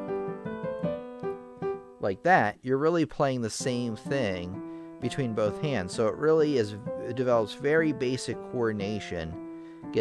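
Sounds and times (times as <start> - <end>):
piano played with both hands: 0.0 - 2.1, 3.6 - 10.0.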